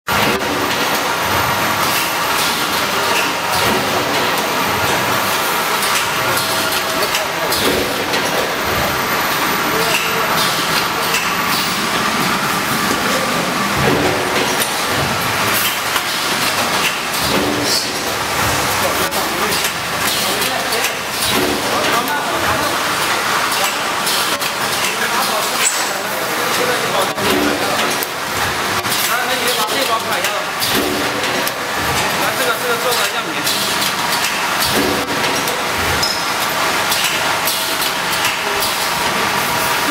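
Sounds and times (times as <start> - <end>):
packaging machinery clattering: 0.1 - 39.9
people's voices: 1.9 - 15.2.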